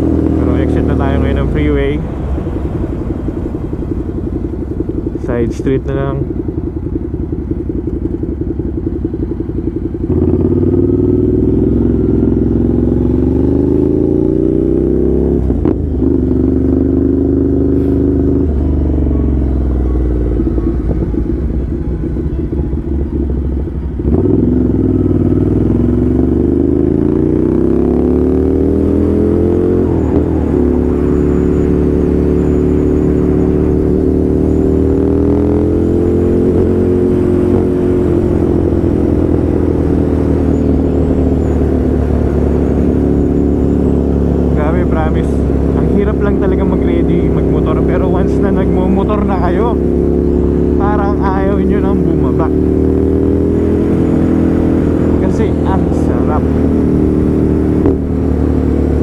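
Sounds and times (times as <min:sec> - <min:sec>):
motorcycle engine revving: 0:00.0 - 0:59.0.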